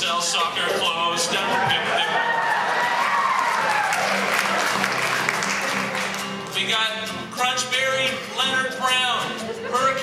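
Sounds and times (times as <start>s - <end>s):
acoustic guitar: 0.0s - 10.0s
audience laughter: 0.5s - 3.2s, 9.4s - 10.0s
audience clapping: 1.7s - 6.6s.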